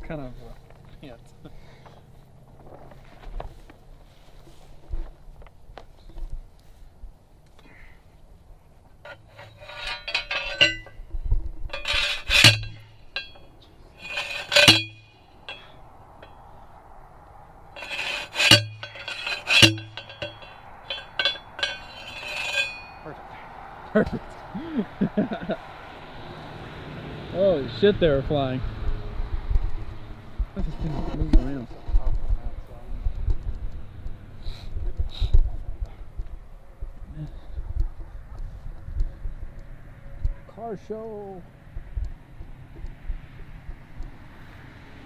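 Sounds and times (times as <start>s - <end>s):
ringing metallic clangs: 9.0s - 16.7s, 17.7s - 23.2s.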